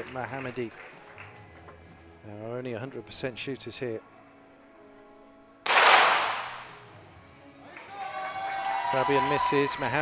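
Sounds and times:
pistol shot ringing in hall: 0:05.7 - 0:06.9.

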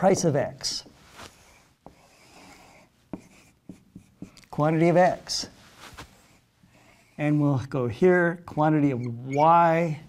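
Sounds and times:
marker rubbing on whiteboard: 0:01.3 - 0:05.4.

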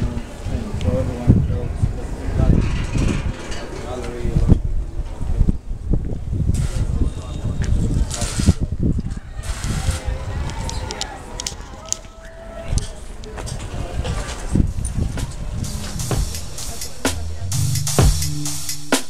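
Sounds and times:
wind rumble on microphone: 0:00.0 - 0:11.6, 0:12.6 - 0:16.8
people talking indistinctly: 0:06.6 - 0:19.0.

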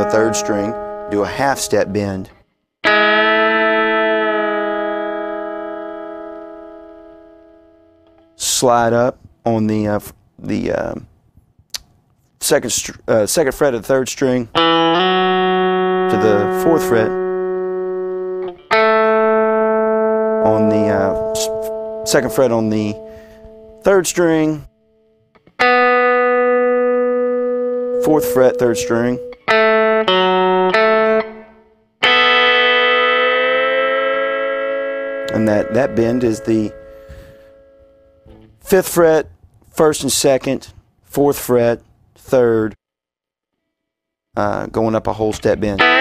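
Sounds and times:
electric guitar note ringing: 0:00.0 - 0:08.4, 0:14.6 - 0:38.7, 0:45.7 - 0:46.0
electric guitar double stop: 0:32.0 - 0:38.6.

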